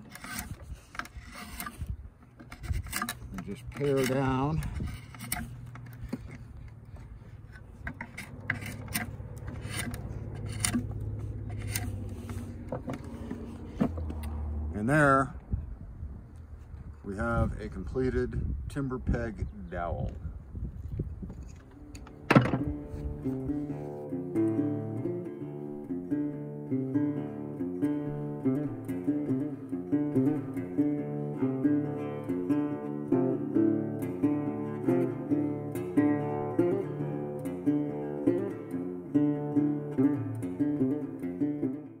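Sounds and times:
acoustic guitar music: 0:00.0 - 0:15.5, 0:21.5 - 0:42.0.

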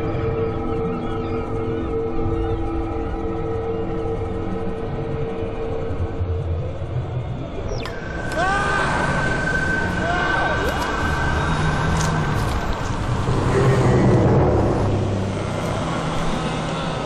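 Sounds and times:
low rumble: 0:04.1 - 0:17.0
gliding voice-like cries: 0:07.9 - 0:12.8.

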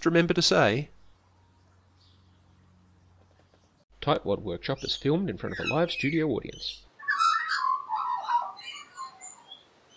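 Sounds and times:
magpie warbling: 0:04.8 - 0:09.7.

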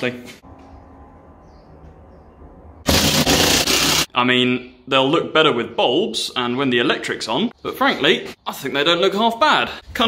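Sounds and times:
cordless drill driving screw: 0:02.9 - 0:04.1.

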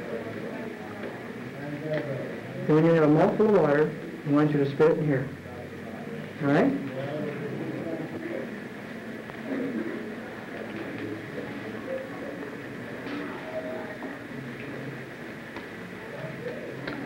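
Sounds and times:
faint low voices: 0:00.0 - 0:17.0
film soundtrack hiss and hum: 0:00.0 - 0:17.0.

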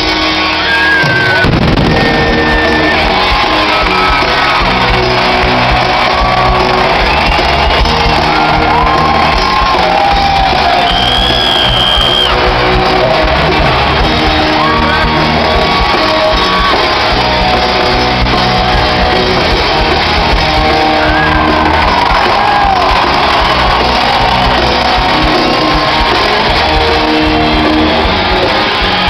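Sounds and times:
fans shouting and whooping: 0:00.0 - 0:29.0
live hard rock band: 0:00.0 - 0:29.0.

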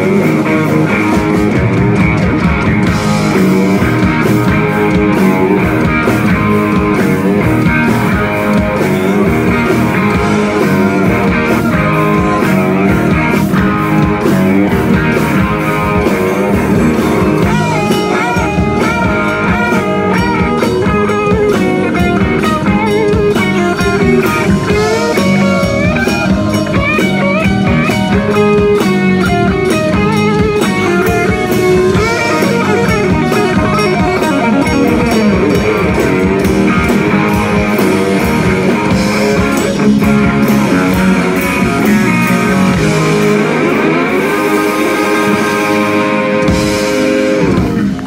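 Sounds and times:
blues rock band playing: 0:00.0 - 0:48.0
lead guitar with bent notes: 0:00.0 - 0:48.0.

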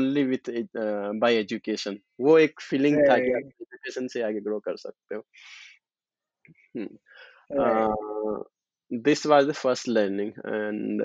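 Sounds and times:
man speaking: 0:00.0 - 0:05.6, 0:07.5 - 0:11.0
short breath: 0:05.4 - 0:05.8.

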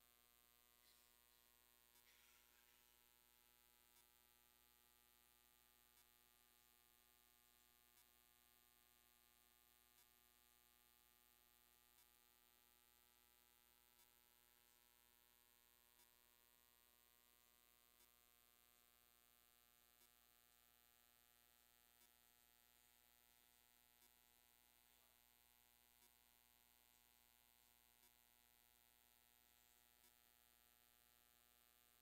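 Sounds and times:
faint electrical hum: 0:00.0 - 0:32.0
faint ticks: 0:00.1 - 0:32.0.

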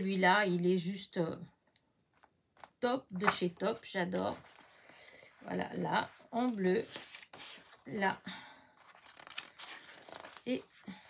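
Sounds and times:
paper pages rustling: 0:02.2 - 0:11.0.

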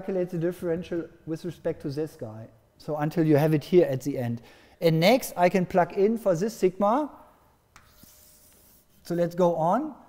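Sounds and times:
chalk scratching on blackboard: 0:07.8 - 0:09.6.

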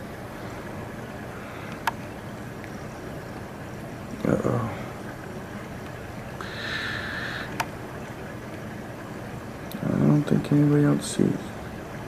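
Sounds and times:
faint hiss: 0:00.0 - 0:08.0
aquarium pumps and water rushing: 0:00.0 - 0:12.0.

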